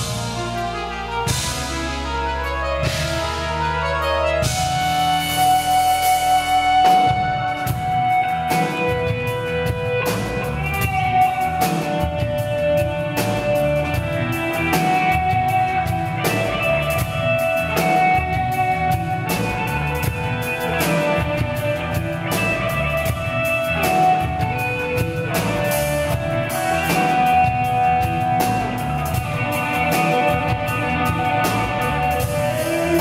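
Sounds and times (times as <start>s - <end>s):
drums: 0.0s - 33.0s
electric guitar sustained melody: 0.0s - 33.0s.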